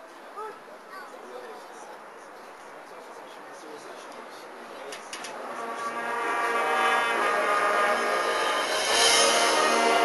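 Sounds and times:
marching band brass chord: 5.4 - 10.0.

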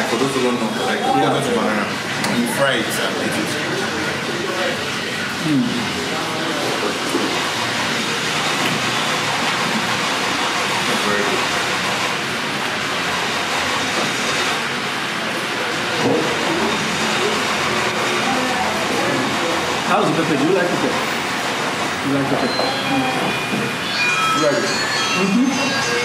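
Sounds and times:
faint voices: 0.0 - 8.9, 14.5 - 26.0.

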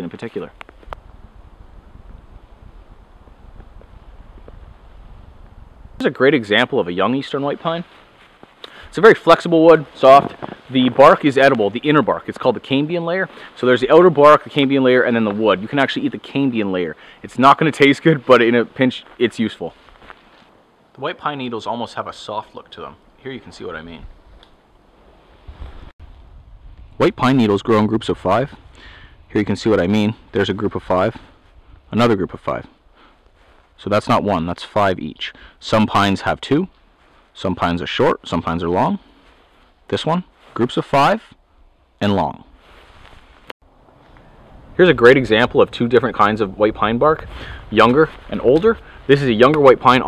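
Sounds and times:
wind buffeting microphone: 0.5 - 6.0, 23.9 - 30.0.

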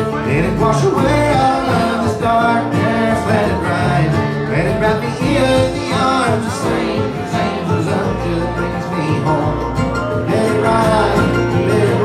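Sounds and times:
acoustic guitar: 0.0 - 12.0
banjo: 0.0 - 12.0
resonator guitar: 0.0 - 12.0
upright bass: 0.0 - 12.0.

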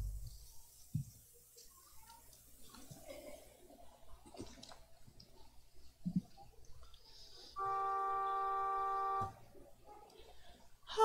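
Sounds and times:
keyboard notes held: 7.6 - 9.6.

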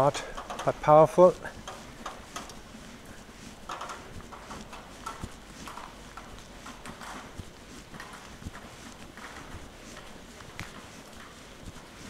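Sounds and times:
footsteps on wet pavement: 0.0 - 12.0.

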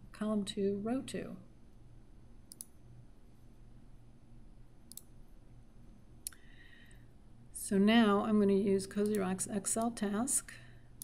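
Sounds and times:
faint low hum: 0.0 - 11.0
computer mouse clicking: 2.5 - 2.8, 4.9 - 5.1, 9.0 - 9.2.

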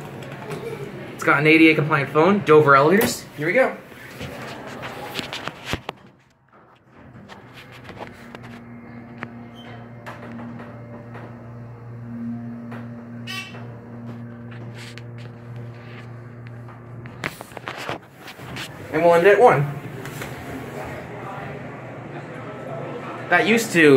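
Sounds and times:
elevator motor hum: 6.9 - 23.8.

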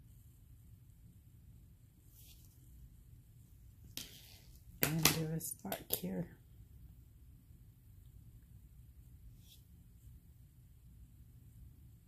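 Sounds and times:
person speaking: 4.8 - 6.4.

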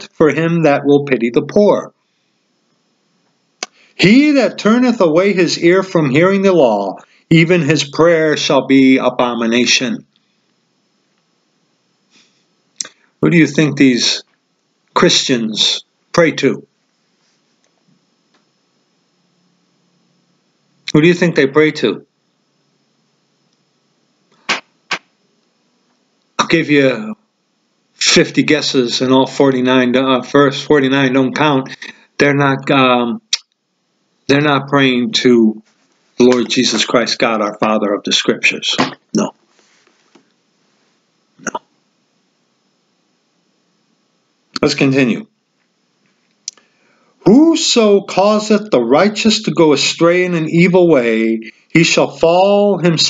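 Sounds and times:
person speaking: 0.0 - 2.0, 3.6 - 10.2, 12.8 - 14.3, 14.9 - 16.7, 20.8 - 22.1, 24.4 - 25.1, 26.4 - 27.2, 28.0 - 33.5, 34.3 - 39.9, 44.6 - 45.3, 46.5 - 53.0
man hiccup-like throat catch: 41.4 - 41.8.

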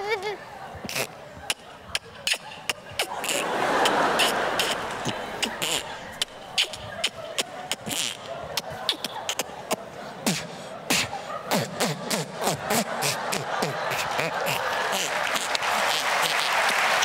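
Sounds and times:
child beatboxing: 0.0 - 3.4, 4.2 - 17.0
audience applauding: 3.1 - 6.5, 14.2 - 17.0.

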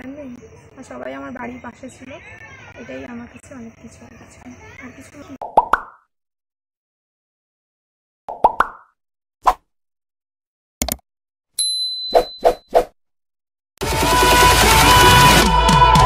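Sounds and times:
cartoon pops: 5.4 - 6.1
loud electronic music: 13.8 - 16.0.

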